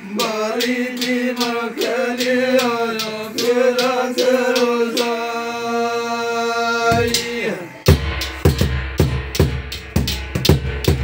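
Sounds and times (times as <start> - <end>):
hand-held metal cymbals struck: 0.0 - 5.5, 6.9 - 11.0
large drum beaten with stick: 6.9 - 11.0.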